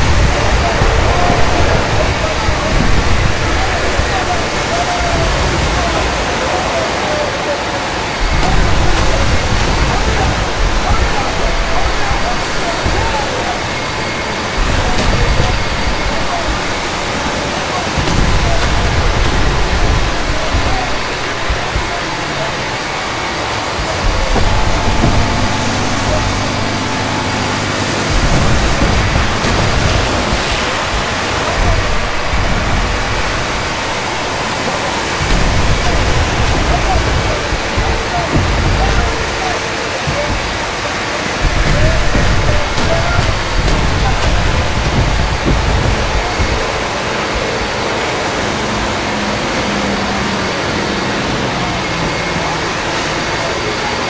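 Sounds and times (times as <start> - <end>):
deep rumbles: 0.0 - 7.0, 7.8 - 53.5
boat engine: 0.0 - 54.0
men's voices: 0.0 - 54.0
sea spray: 0.0 - 54.0.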